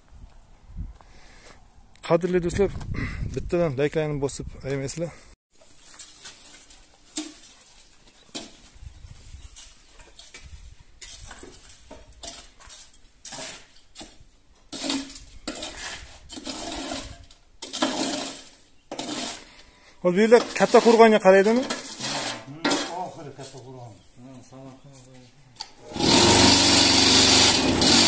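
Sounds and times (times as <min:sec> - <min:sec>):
metal scraper in concrete mix: 0:11.0 - 0:19.5, 0:20.1 - 0:23.6, 0:25.8 - 0:28.0.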